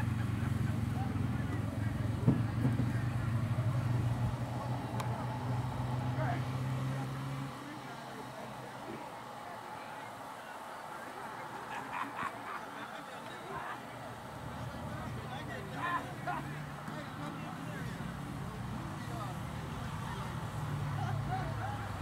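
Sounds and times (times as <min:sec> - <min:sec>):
faint voices: 0:00.0 - 0:22.0
low engine hum: 0:00.0 - 0:22.0.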